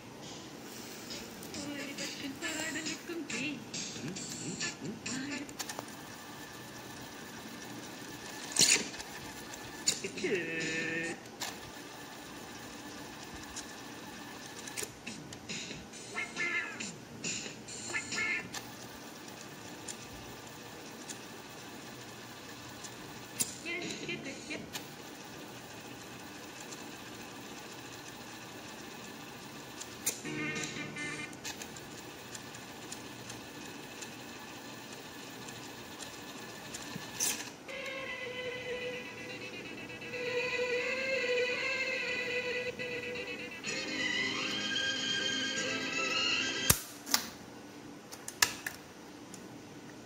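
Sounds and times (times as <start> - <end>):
song playing from tape: 0.2 - 5.6, 9.8 - 11.3, 14.8 - 18.6, 30.1 - 31.4, 37.7 - 46.8
tape winding noise: 0.2 - 46.9.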